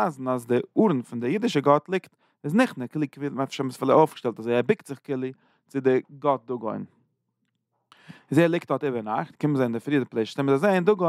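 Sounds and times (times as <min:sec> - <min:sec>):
man speaking: 0:00.0 - 0:06.9, 0:08.2 - 0:11.0.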